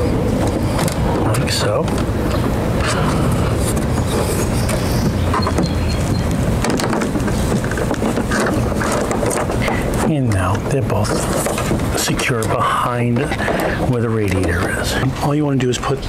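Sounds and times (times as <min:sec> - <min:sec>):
low background rumble: 0:00.0 - 0:16.0
plastic grille clicks and scrapes: 0:06.6 - 0:15.2.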